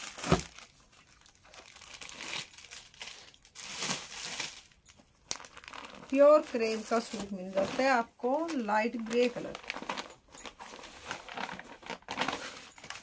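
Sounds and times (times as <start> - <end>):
rustling of packaged clothing: 0.0 - 13.0.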